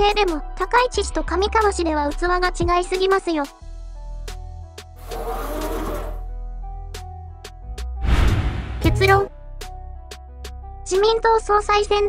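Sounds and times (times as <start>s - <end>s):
background music with held tones: 0.0s - 8.0s, 8.8s - 12.0s
whoosh transition effect: 8.0s - 9.0s.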